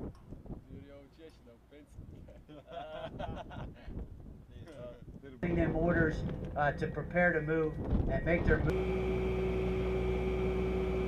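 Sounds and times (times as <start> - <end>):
men laughing: 2.1 - 4.1.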